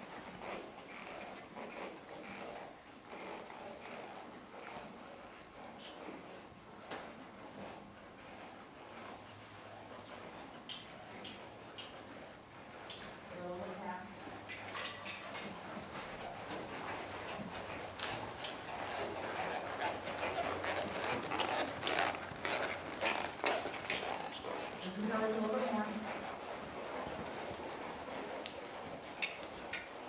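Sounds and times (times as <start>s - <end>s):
horse hooves on arena footing: 0.0s - 30.0s.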